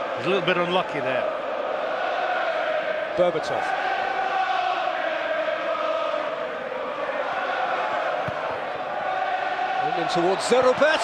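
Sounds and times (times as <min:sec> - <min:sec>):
crowd chanting in unison: 0:00.0 - 0:11.0
crowd noise: 0:00.0 - 0:11.0.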